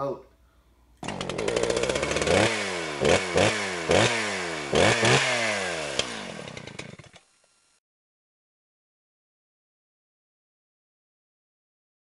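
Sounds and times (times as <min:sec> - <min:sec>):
small engine revving: 0:01.0 - 0:07.8.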